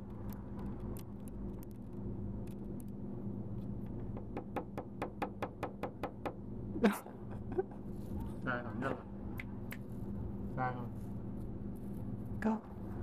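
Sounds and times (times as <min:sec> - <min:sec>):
steady hum: 0:00.0 - 0:13.0.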